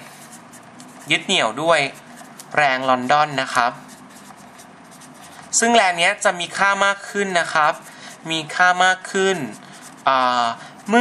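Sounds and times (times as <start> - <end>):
marker pen scratching on paper: 0.0 - 11.0
man speaking: 5.5 - 11.0.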